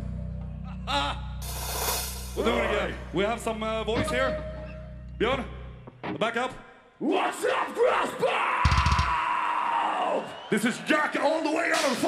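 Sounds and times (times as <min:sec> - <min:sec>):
man yelling into microphone: 0:02.4 - 0:03.2, 0:07.0 - 0:12.0.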